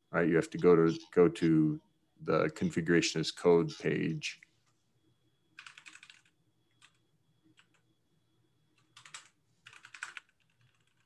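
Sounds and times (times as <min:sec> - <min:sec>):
computer keyboard typing: 0:05.6 - 0:07.8, 0:08.8 - 0:11.0.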